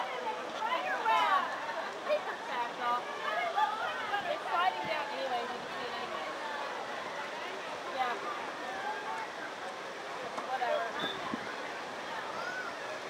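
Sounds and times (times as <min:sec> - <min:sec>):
young children chattering: 0:00.0 - 0:09.6, 0:10.2 - 0:13.0.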